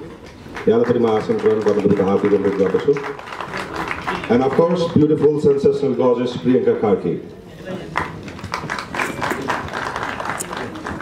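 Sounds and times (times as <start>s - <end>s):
audience clapping: 0.0s - 6.1s, 7.9s - 11.0s.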